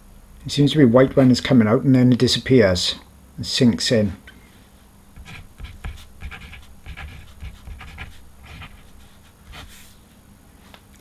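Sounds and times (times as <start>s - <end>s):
marker writing on paper: 5.2s - 9.8s.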